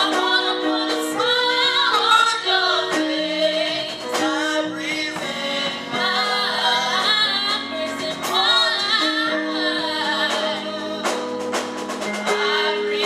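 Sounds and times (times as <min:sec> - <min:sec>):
gospel choir singing: 0:00.0 - 0:13.0.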